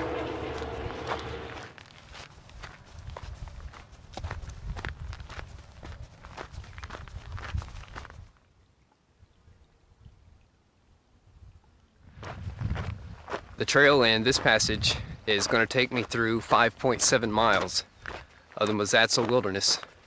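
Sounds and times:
highway traffic noise: 0:00.0 - 0:01.8
footsteps on rocky dirt trail: 0:00.0 - 0:08.4, 0:12.2 - 0:20.0.

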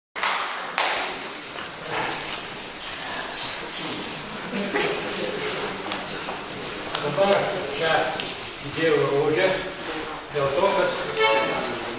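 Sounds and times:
man speaking in reverberant hall: 0:06.7 - 0:11.9.

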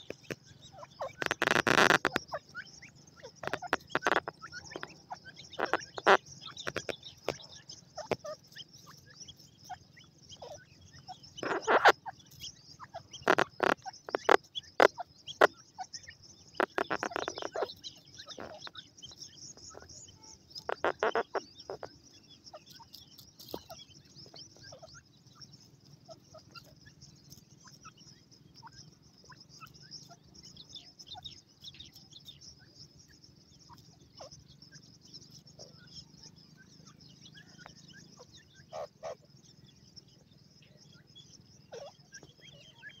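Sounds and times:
birds peeping and clucking: 0:00.0 - 0:43.0.

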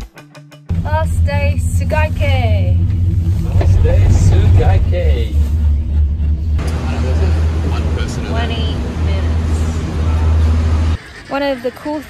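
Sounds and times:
gondola cabin rumble and hum: 0:00.7 - 0:11.0
voices talking: 0:00.9 - 0:05.9, 0:06.6 - 0:12.0.

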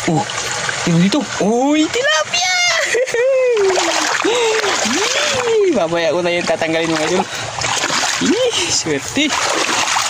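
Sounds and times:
water splashing: 0:00.0 - 0:10.0
man exclaiming: 0:02.2 - 0:05.9.

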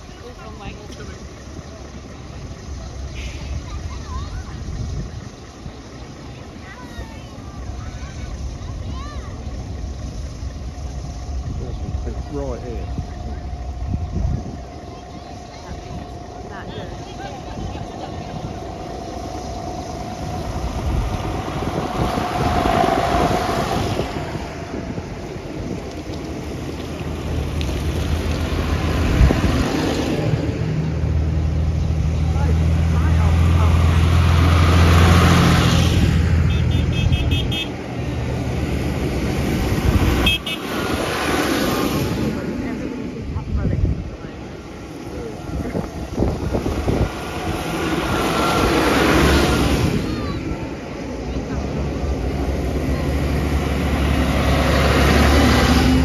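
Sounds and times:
people chatting: 0:00.0 - 0:09.6, 0:10.9 - 0:13.8, 0:14.5 - 0:20.3, 0:32.1 - 0:34.0, 0:42.1 - 0:46.8, 0:49.4 - 0:53.4
tractor diesel engine passing: 0:00.0 - 0:56.0.

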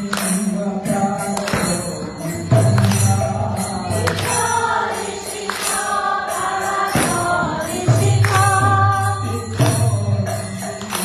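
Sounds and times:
hand cymbals struck: 0:00.0 - 0:11.0
group chanting: 0:03.9 - 0:09.7.

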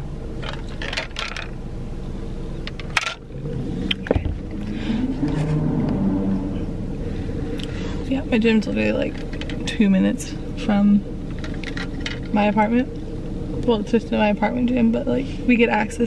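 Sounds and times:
low hum inside a car: 0:00.0 - 0:16.0.

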